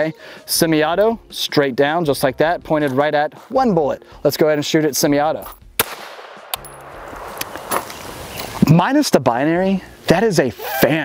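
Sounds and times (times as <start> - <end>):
pistol shots: 5.8 - 7.9.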